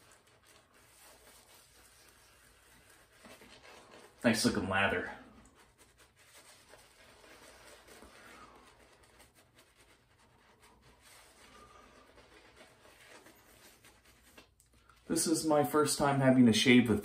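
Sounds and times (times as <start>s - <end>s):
shaving brush scrubbing face: 0.0s - 16.2s.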